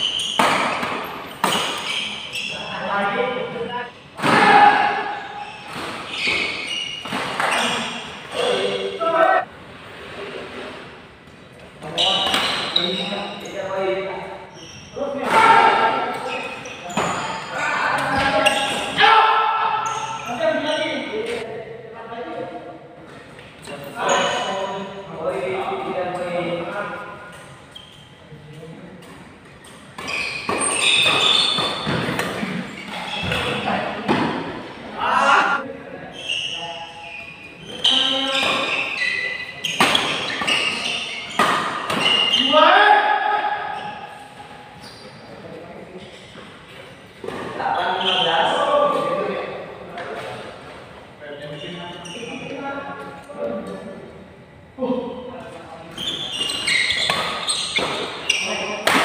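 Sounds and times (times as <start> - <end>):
shoes squeaking on floor: 0.0 - 4.1, 5.0 - 9.4, 11.8 - 13.9, 14.5 - 19.2, 19.8 - 21.4, 23.7 - 24.9, 27.3 - 28.6, 29.4 - 33.9, 35.4 - 42.8, 43.7 - 49.3, 51.3 - 53.1, 55.8 - 59.0
racket hitting shuttlecock: 41.3 - 42.3, 58.8 - 59.0.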